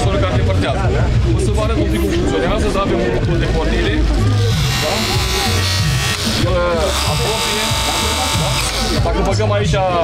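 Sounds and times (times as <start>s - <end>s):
electric motor and pump whine: 4.2s - 9.3s.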